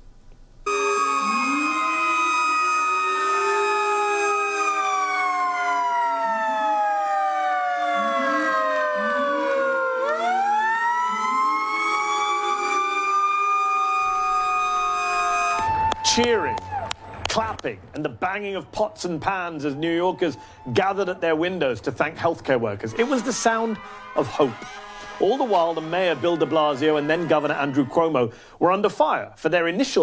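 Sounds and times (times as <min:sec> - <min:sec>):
short lower rising tones: 0:00.7 - 0:16.0
fire truck siren: 0:00.7 - 0:17.3, 0:19.4 - 0:21.2, 0:23.0 - 0:27.8.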